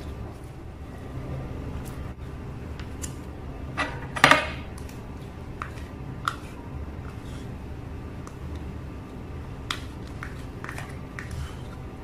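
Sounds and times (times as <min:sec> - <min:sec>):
low rumble of recording noise: 0:00.0 - 0:12.0.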